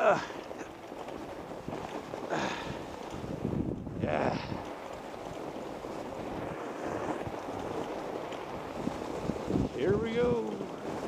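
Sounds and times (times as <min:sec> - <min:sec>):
bike tyres on packed snow: 0:00.0 - 0:11.0
wind on microphone: 0:00.0 - 0:11.0.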